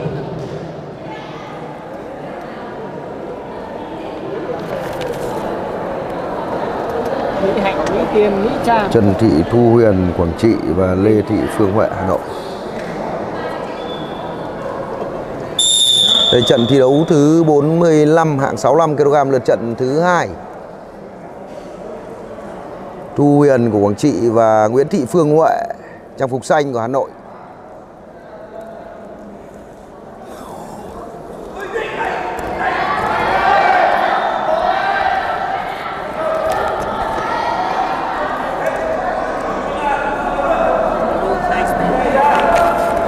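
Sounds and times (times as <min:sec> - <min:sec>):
murmur of voices in hall: 0:00.0 - 0:43.0
referee's whistle long note: 0:15.6 - 0:17.5.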